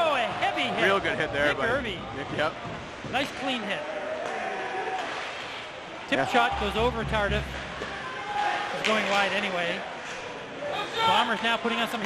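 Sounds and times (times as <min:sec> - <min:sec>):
crowd and arena noise: 0:00.0 - 0:12.0.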